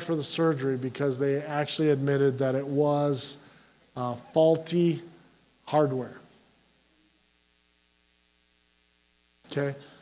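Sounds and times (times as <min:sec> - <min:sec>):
electrical mains hum: 0:00.0 - 0:10.0
person speaking: 0:04.0 - 0:06.3.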